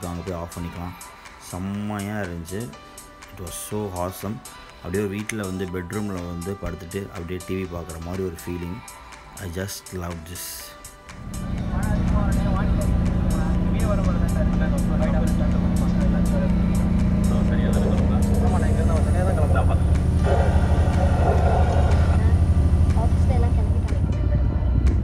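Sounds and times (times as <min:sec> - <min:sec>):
bus engine drone: 0:11.2 - 0:25.0
indistinct voices: 0:11.2 - 0:25.0.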